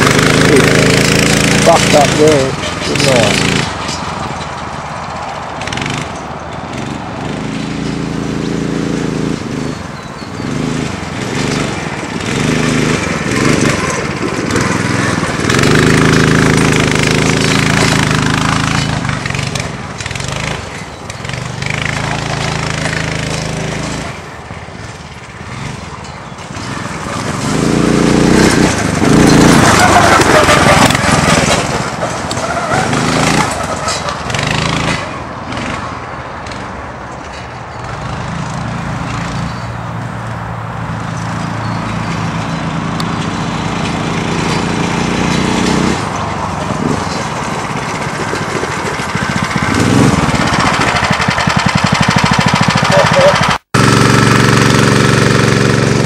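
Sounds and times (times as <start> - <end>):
go-kart engine revving: 0.0 - 56.0.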